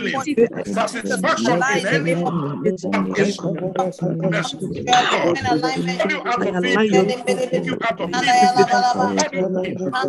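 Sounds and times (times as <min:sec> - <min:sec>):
man speaking loudly: 0:00.0 - 0:10.0.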